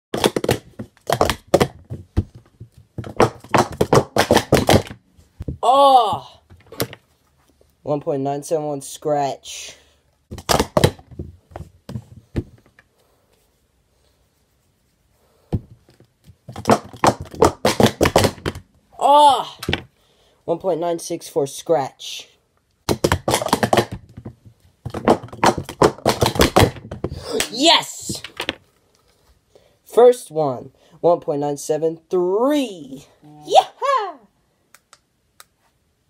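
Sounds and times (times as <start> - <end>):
plastic cups clacking: 0.1 - 2.0, 16.5 - 18.6, 22.9 - 24.3, 24.9 - 27.5.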